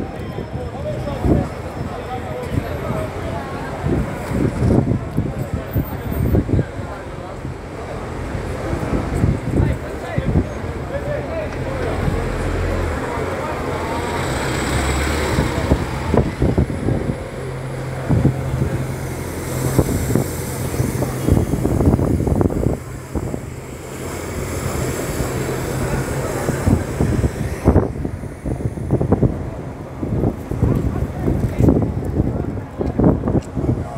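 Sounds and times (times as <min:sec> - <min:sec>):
buses pulling away: 0:00.0 - 0:33.9
street traffic noise: 0:00.0 - 0:33.9
wind buffeting microphone: 0:00.0 - 0:33.9.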